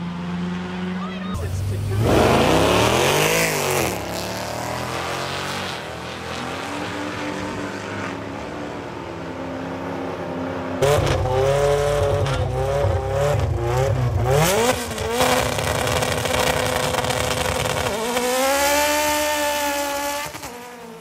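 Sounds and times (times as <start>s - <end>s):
car engines revving: 0.0s - 21.0s
cars launching and pulling away: 0.0s - 21.0s.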